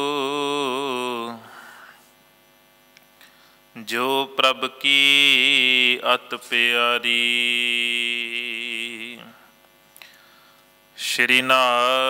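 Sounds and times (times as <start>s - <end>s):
man chanting: 0.0s - 1.5s, 3.8s - 9.4s, 11.0s - 12.0s
faint electrical hum: 0.0s - 12.0s.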